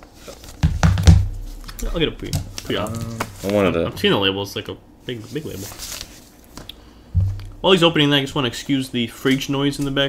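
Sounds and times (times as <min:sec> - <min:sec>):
low thumps and sharp clicks: 0:07.2 - 0:07.6.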